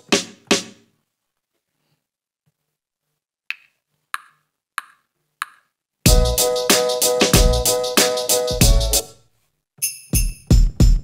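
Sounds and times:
sharp percussion sample hits: 6.1 - 9.0, 10.0 - 11.0
drum machine beat: 6.1 - 9.1, 10.1 - 11.0.

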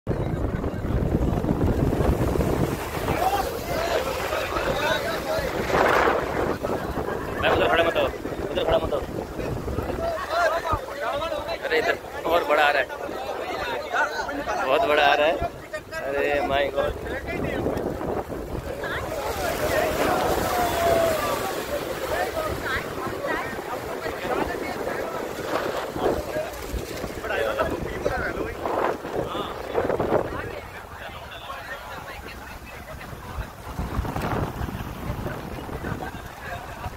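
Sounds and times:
crowd talking: 0.1 - 36.9
people chattering: 0.1 - 36.9
sea surf against rocks: 0.1 - 36.9
wave crashing over rocks: 0.1 - 36.9
wind buffeting microphone: 0.1 - 36.9.

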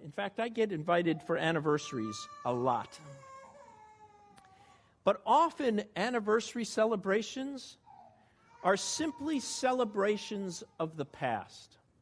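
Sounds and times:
baby whimpering: 2.0 - 4.5, 7.8 - 9.4.

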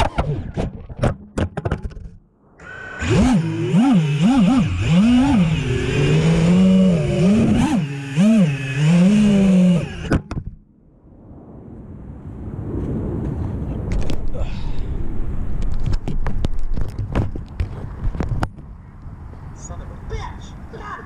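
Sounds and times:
quadcopter motors whining: 2.6 - 10.3.

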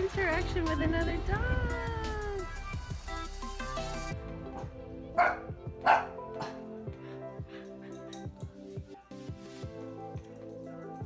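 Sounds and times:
background music: 0.0 - 11.0
puppy yapping: 5.2 - 6.6.

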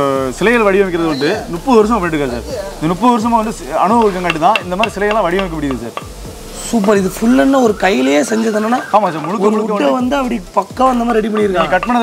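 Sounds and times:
man talking: 0.0 - 12.0
mallet tapping on chisel: 3.8 - 7.0, 11.0 - 12.0.

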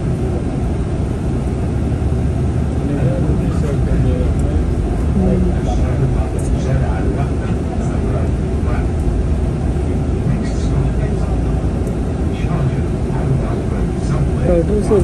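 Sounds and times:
bus engine rumble: 0.0 - 15.0
faint indistinct voices: 2.8 - 9.0.

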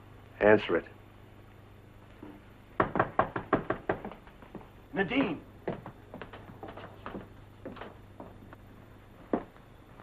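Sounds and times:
rapid knocking on door: 2.8 - 8.3.

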